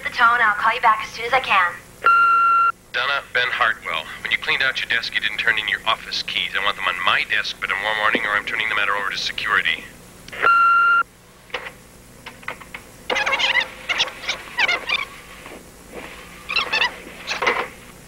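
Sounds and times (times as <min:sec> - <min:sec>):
answering machine beep: 0:02.0 - 0:02.7, 0:10.4 - 0:11.0
squeaky tape chirping: 0:13.1 - 0:15.2, 0:16.5 - 0:17.5.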